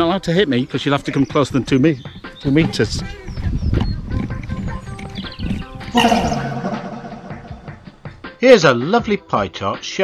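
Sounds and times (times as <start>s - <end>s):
cow mooing: 6.0s - 7.9s.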